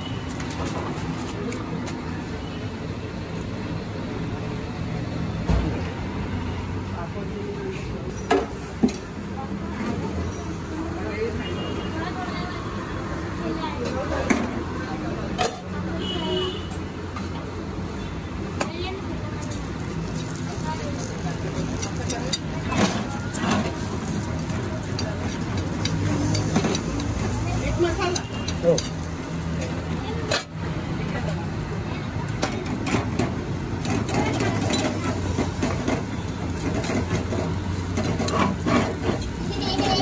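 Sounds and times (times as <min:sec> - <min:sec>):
traffic rumble: 0:00.0 - 0:40.0.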